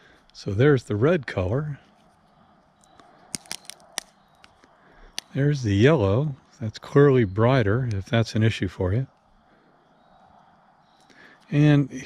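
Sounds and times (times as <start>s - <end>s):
glow sticks clicking: 2.7s - 5.4s.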